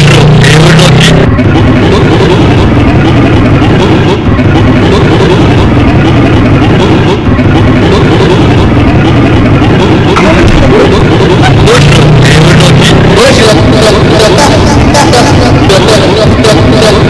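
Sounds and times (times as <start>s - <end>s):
distorted smeared voices: 0.0s - 17.0s.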